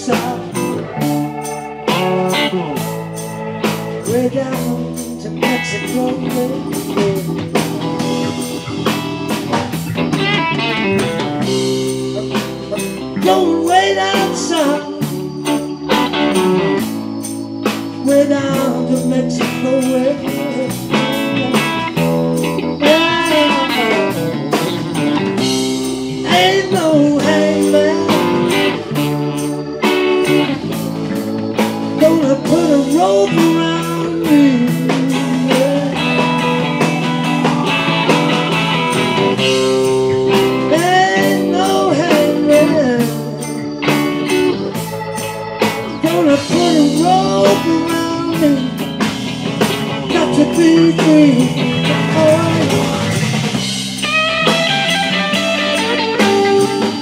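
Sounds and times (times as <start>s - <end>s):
bass guitar: 0.0s - 57.0s
electric guitar lead: 0.0s - 57.0s
keyboard: 0.0s - 57.0s
drum kit cymbals: 0.1s - 57.0s.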